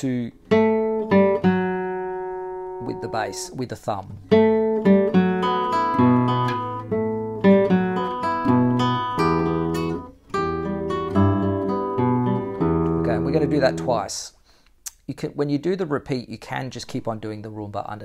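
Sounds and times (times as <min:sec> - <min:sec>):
fingerstyle nylon-string guitar: 0:00.4 - 0:03.3, 0:04.0 - 0:14.1.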